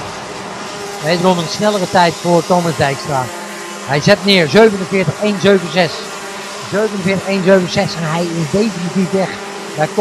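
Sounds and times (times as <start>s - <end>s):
kart engines buzzing: 0.0s - 10.0s.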